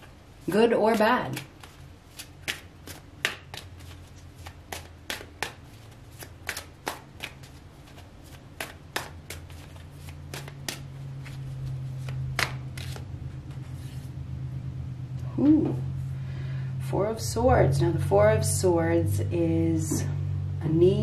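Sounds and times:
low steady hum: 0.0s - 21.0s
cards being shuffled: 0.6s - 14.1s.

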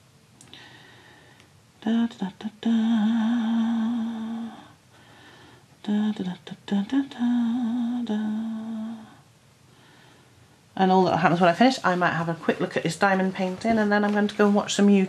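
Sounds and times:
woman humming: 1.8s - 4.8s, 5.8s - 9.2s.

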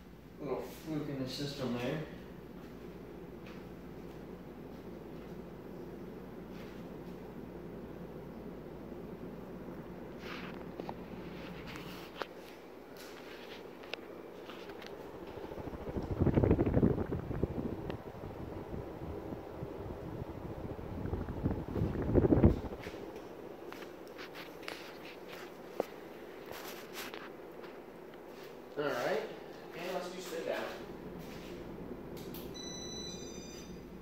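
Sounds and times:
ceiling fan running: 0.0s - 34.0s
fan draught buffeting microphone: 0.4s - 32.5s.

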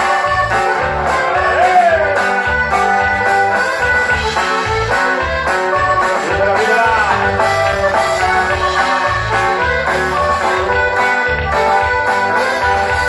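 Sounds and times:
live band music: 0.0s - 13.0s.

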